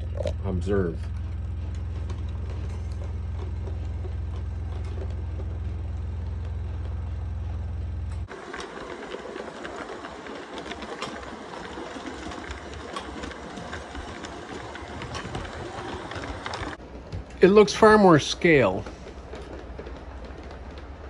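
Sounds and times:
electric motor hum: 0.0 - 16.8
model train rattling and clicking: 0.3 - 21.0.

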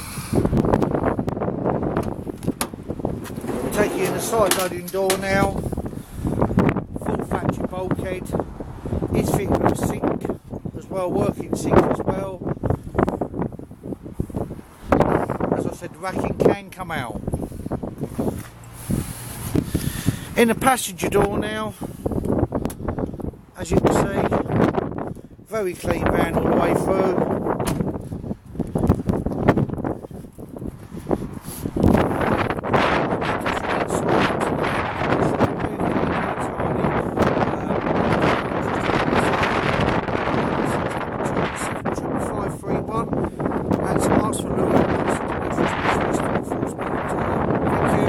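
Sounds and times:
wind on microphone: 0.0 - 48.0.

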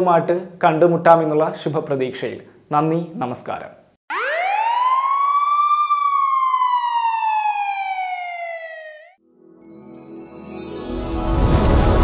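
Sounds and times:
siren wail: 4.1 - 9.2.

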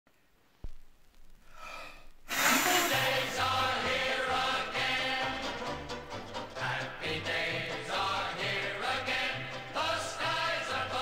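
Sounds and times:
man sighing: 1.5 - 3.2.

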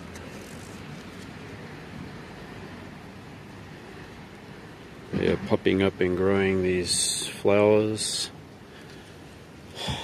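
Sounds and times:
even hiss: 8.1 - 10.0.

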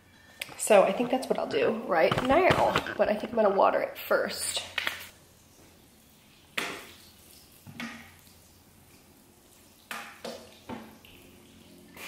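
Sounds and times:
short sharp knocks and splashes: 7.6 - 8.2.

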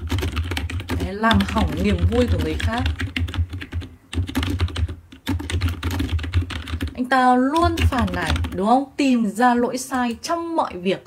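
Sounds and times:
typing on computer keyboard: 0.0 - 8.6.

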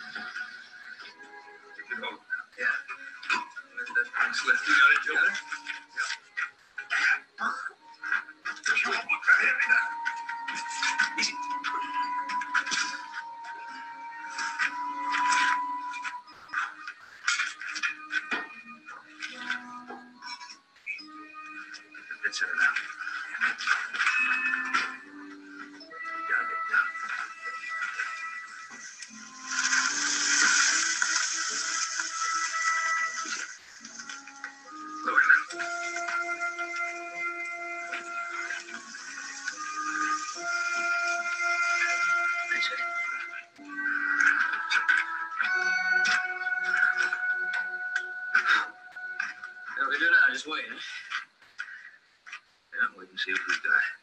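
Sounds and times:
television music score: 0.0 - 54.0
loud hissing noise: 28.7 - 35.8.

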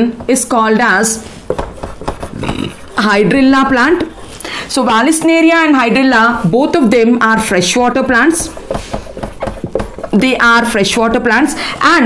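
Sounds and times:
marker tapping whiteboard: 0.0 - 4.2, 4.9 - 5.8, 7.6 - 11.1
marker scratching on whiteboard: 0.0 - 12.0.

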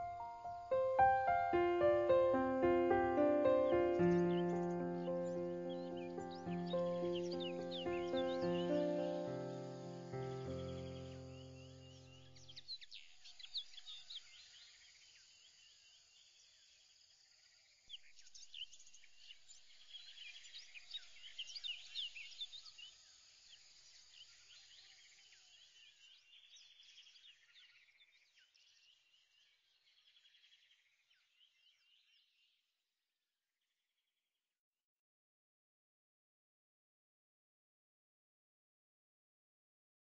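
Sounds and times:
background music: 0.0 - 11.9
birds chirping: 0.0 - 12.7.

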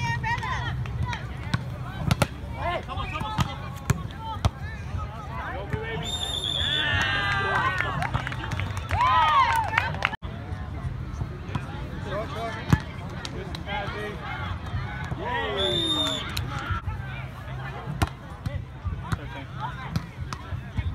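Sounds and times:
players shouting: 0.0 - 10.0, 13.6 - 17.9.

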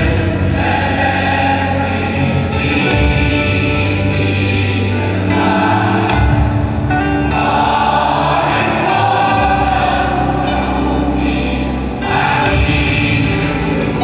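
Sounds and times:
gospel choir singing: 0.0 - 14.0.

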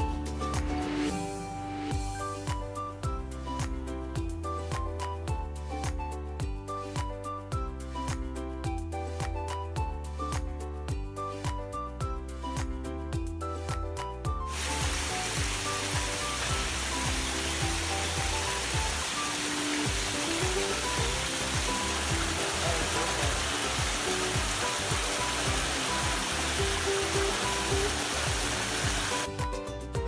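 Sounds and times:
background music: 0.0 - 30.0
stream rushing over stone weir: 14.5 - 29.3.

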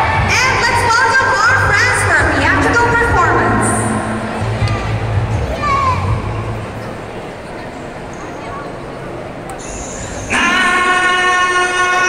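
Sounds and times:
amplified music: 1.5 - 6.8
singer holding long note: 10.0 - 12.0.

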